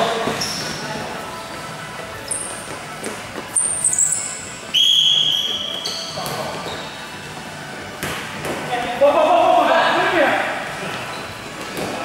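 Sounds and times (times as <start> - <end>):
referee's whistle: 3.8 - 6.1.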